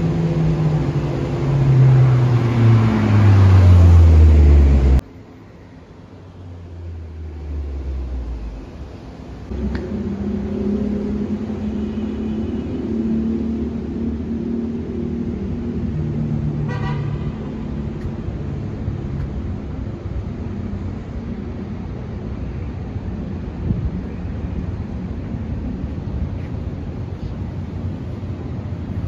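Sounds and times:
vehicle engines running: 0.0s - 29.0s
car horn toot: 16.7s - 17.4s.

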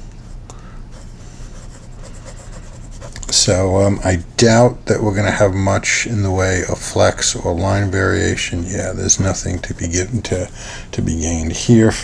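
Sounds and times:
pen nib scratching on paper: 1.0s - 3.4s.

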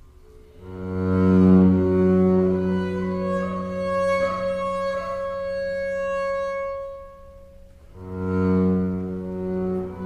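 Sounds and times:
bowed double bass note: 0.0s - 10.0s.

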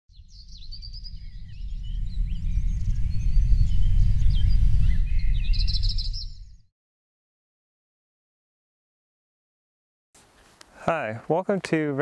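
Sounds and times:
birds chirping: 0.1s - 6.7s
deep low rumble: 0.1s - 6.7s.

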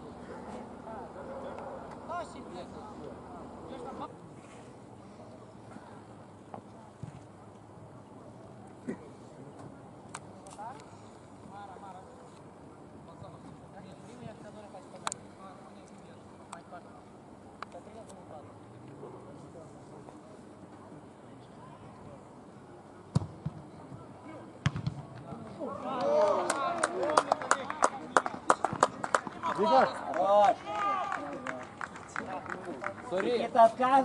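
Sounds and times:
football kick thump: 23.1s - 23.6s, 24.6s - 25.3s
hand claps: 26.2s - 33.0s.

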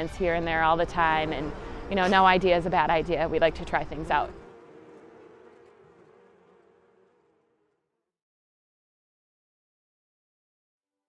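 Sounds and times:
honeybees buzzing: 0.0s - 7.8s.

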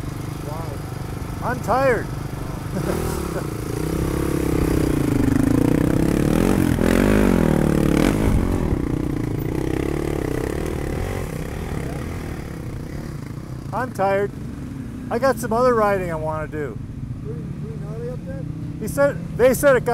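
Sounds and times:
dirt bike engine idling and revving: 0.0s - 19.9s.

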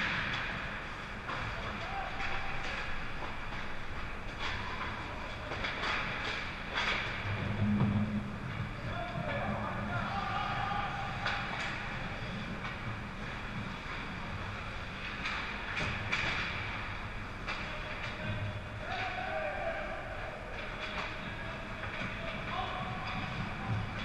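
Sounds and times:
hockey sticks clacking: 0.0s - 24.0s.

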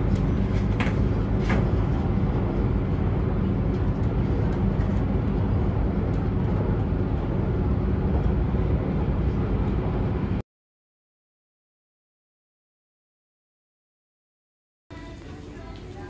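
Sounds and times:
train rumbling inside carriage: 0.0s - 10.4s, 14.9s - 16.0s.

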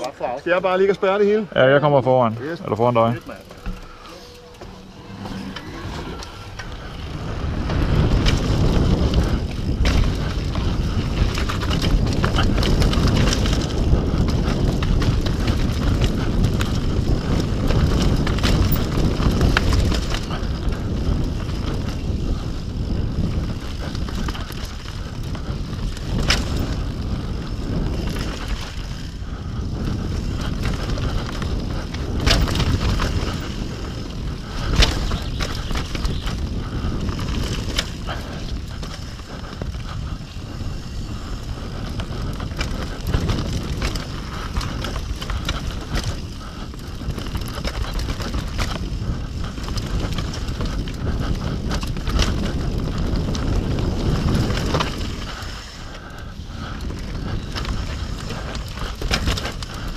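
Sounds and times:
tyres rolling over dirt: 0.0s - 56.0s, 56.6s - 59.9s
bike clicks and rattles: 0.0s - 59.9s
wind buffeting microphone: 0.0s - 59.9s.

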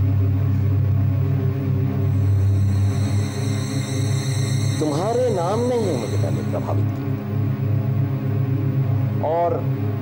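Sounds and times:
low brooding drone: 0.0s - 10.0s
high shimmering tones: 1.5s - 7.7s.

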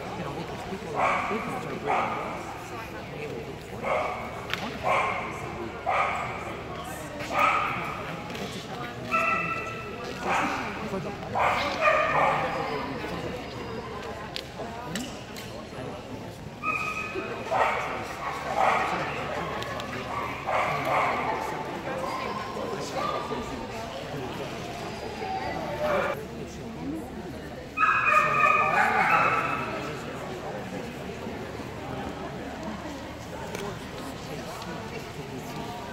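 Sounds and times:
background chatter: 0.0s - 35.9s.

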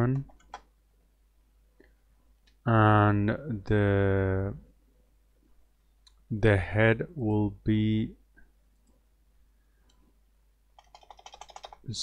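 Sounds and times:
computer keyboard clicks: 10.8s - 11.8s.

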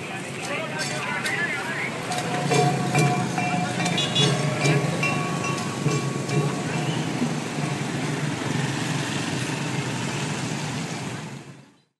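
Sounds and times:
motorbike engines passing: 0.0s - 11.8s
bus moving along road: 0.0s - 11.9s.

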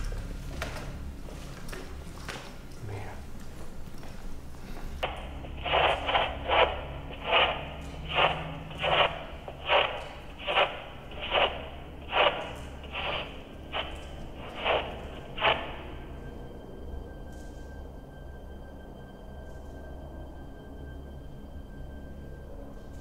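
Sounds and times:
radio noise bursts: 5.0s - 16.0s.

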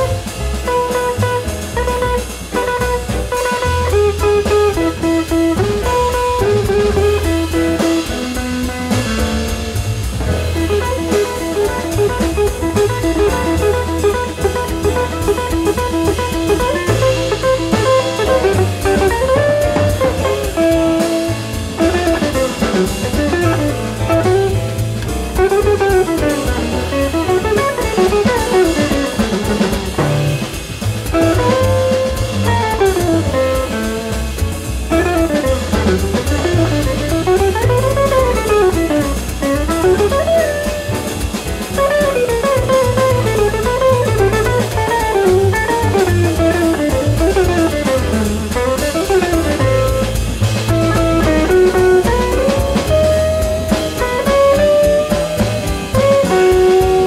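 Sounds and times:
double bass: 0.0s - 57.0s
drum kit with cymbals: 0.0s - 57.0s
guitar melody: 0.0s - 57.0s.

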